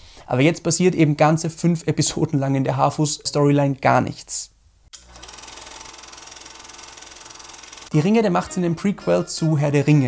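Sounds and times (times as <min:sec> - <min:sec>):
fast mechanical rattle: 0:05.0 - 0:08.0
person speaking: 0:07.9 - 0:10.0.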